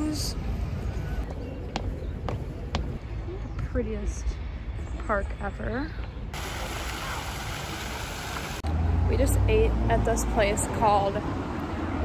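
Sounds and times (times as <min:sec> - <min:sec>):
fountain water splashing: 0:06.4 - 0:08.6.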